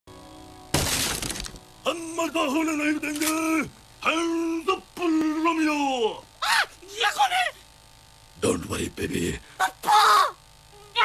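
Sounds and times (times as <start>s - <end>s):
cartoon smashing crash: 0.7s - 1.6s.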